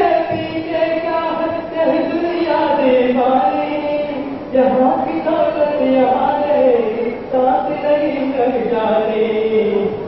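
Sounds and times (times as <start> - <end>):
man singing into a microphone: 0.0 - 10.0.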